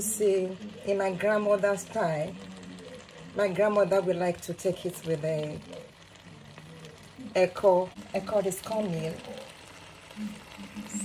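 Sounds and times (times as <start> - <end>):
woman's voice: 0.0 - 2.4, 3.4 - 5.8, 7.2 - 9.4
pot of soup simmering: 0.0 - 11.0.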